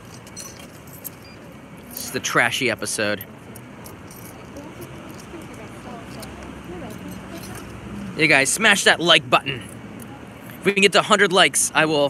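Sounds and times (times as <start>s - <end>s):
city street noise: 0.0s - 12.0s.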